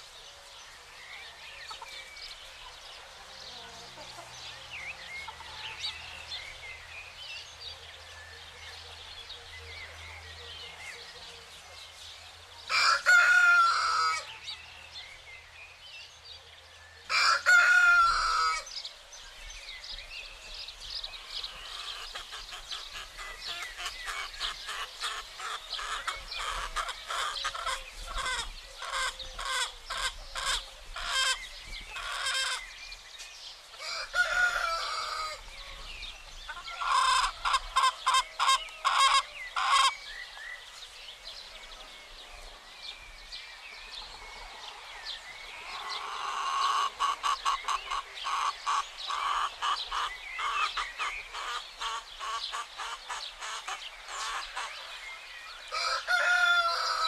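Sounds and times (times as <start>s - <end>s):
chickens clucking: 1.6s - 6.4s, 21.1s - 32.7s, 33.7s - 40.1s, 45.6s - 57.0s
rooster crowing: 12.7s - 14.3s, 17.1s - 18.7s, 33.8s - 35.4s, 55.7s - 57.0s.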